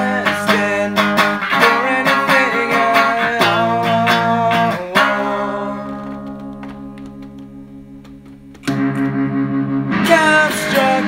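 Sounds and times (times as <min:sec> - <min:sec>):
pulsing electric guitar chords: 0:00.0 - 0:11.0.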